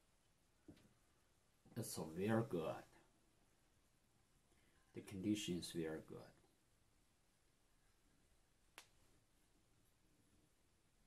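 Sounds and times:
faint click: 0:08.7 - 0:09.0.

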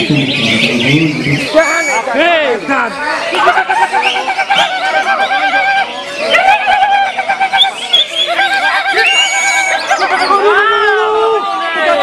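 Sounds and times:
bird singing trilled notes: 0:00.0 - 0:06.4, 0:07.2 - 0:11.0.

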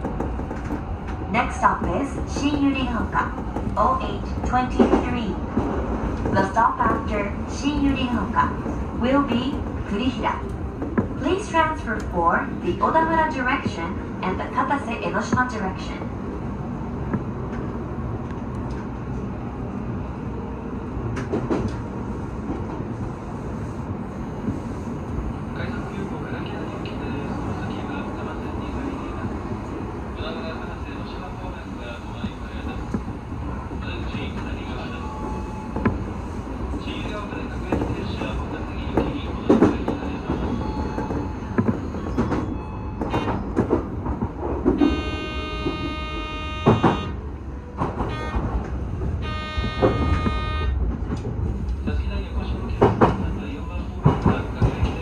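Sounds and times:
train wheels and motors rumbling: 0:00.0 - 0:55.0
train horn blasts: 0:44.8 - 0:47.2, 0:48.0 - 0:50.8.

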